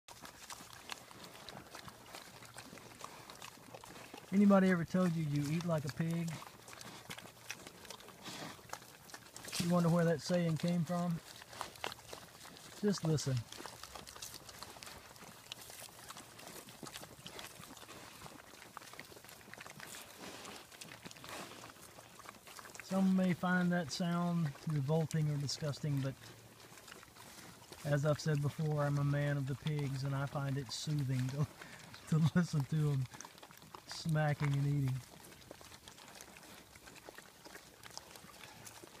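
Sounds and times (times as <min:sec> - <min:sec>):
pigs chewing and crunching: 0:00.1 - 0:39.0.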